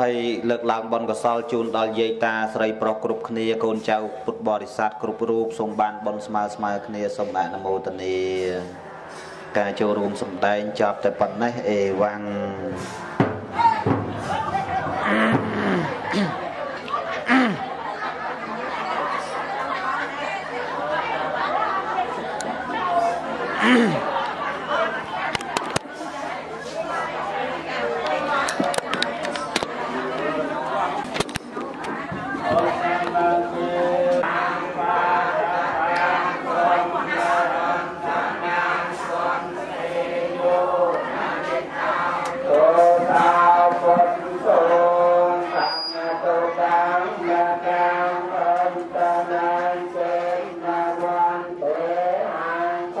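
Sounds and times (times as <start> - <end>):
people talking: 9.6 - 13.0, 13.6 - 48.1.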